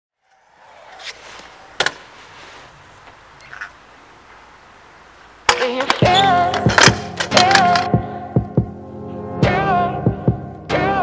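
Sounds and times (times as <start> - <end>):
scooter wheels rolling on concrete: 0.1 - 7.9.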